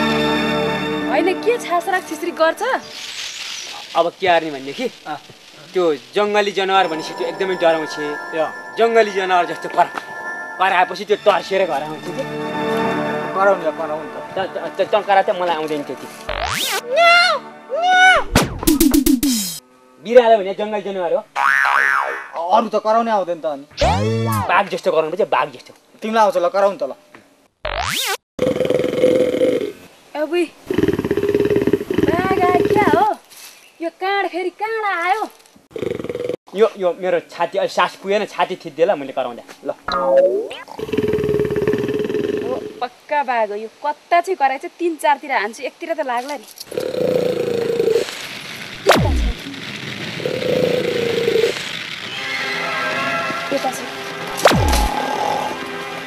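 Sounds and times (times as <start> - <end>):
sustained tone background music: 0.0 - 2.6, 6.7 - 16.2
rising comic glide effect: 16.3 - 16.8, 23.7 - 24.6
man growling: 28.4 - 29.8, 40.7 - 42.8, 54.7 - 55.7.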